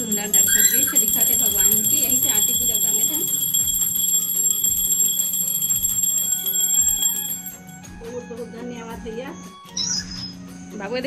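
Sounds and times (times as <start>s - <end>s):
temple bells ringing: 0.0s - 7.8s.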